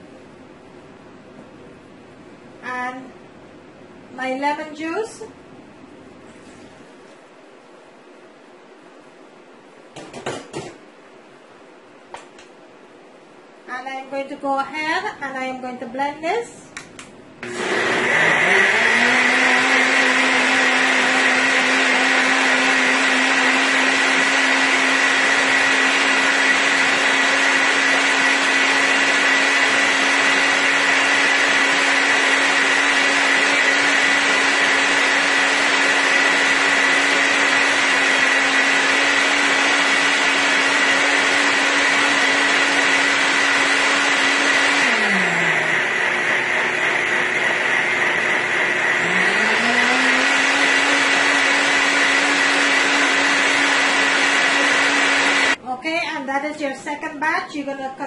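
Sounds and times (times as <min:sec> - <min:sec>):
blender motor running: 0:17.4 - 0:55.6.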